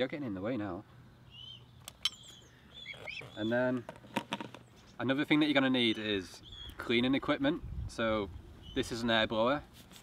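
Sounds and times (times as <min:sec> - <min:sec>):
faint bird chirps: 0:01.0 - 0:03.8, 0:05.8 - 0:06.9.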